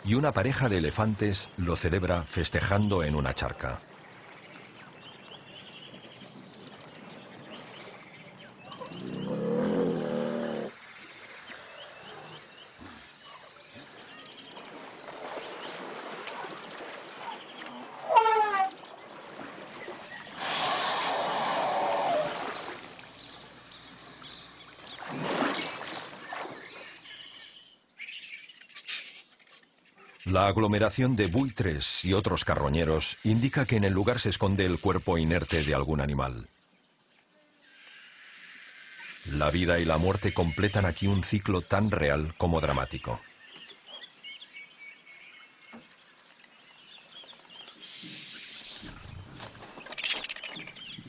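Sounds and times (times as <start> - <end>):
small birds chirping: 0.1 - 21.9, 22.9 - 51.0
water splashing: 3.4 - 27.2
elephant low call: 17.7 - 18.8.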